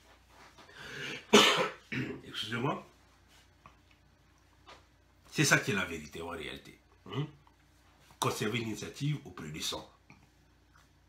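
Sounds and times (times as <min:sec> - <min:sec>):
man coughing: 0:01.0 - 0:02.3.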